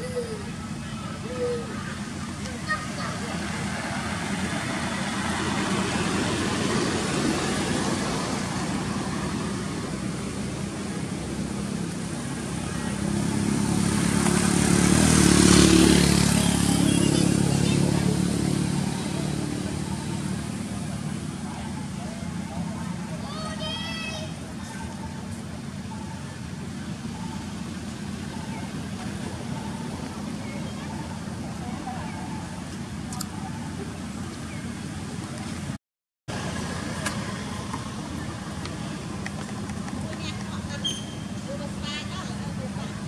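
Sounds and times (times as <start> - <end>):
background traffic noise: 0.0 - 43.0
vehicle passing on road: 1.8 - 24.8.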